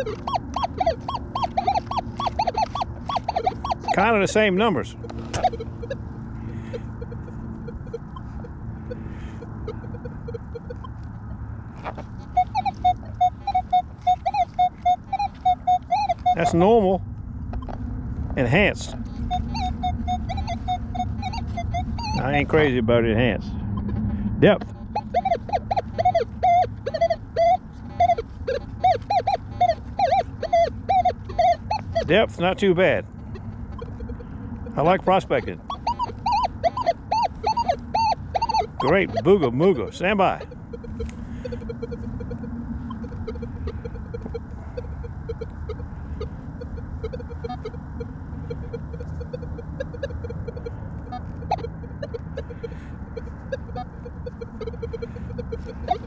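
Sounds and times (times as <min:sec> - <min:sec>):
metal detector beeps: 0:00.0 - 0:11.0, 0:11.8 - 0:17.8, 0:18.4 - 0:23.2, 0:23.8 - 0:56.0
metal detector short beeps: 0:33.8 - 0:36.9, 0:37.5 - 0:45.8.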